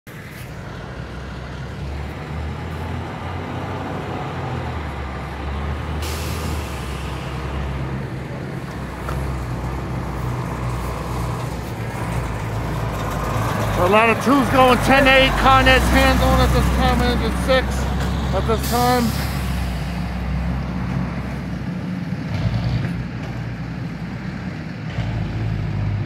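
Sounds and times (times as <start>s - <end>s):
diesel truck engine running: 0.1s - 26.0s
air brake hiss: 6.0s - 7.5s, 18.6s - 20.0s.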